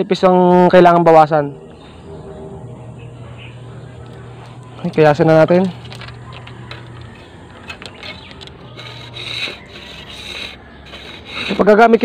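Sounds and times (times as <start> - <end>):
knife scraping bamboo: 5.8 - 12.0.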